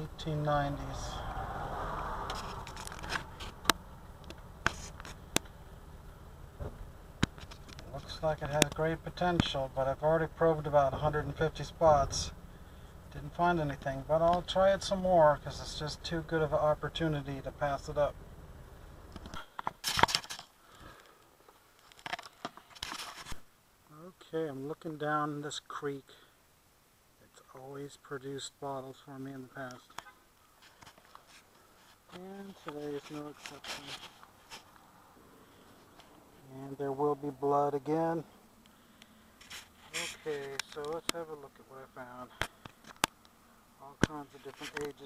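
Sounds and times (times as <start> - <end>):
rustling hiss: 0.0 - 7.9, 38.2 - 41.1
low steady rumble: 0.0 - 19.6
scraping against microphone: 0.8 - 3.8, 4.6 - 5.3, 21.8 - 23.4, 30.6 - 34.8, 39.4 - 41.1, 44.2 - 45.0
sharp clicks and knocks: 6.6 - 9.6.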